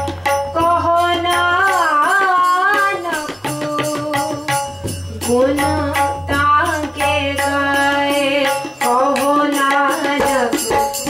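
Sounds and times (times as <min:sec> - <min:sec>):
tabla: 0:00.0 - 0:11.0
woman singing a hymn: 0:05.2 - 0:10.6.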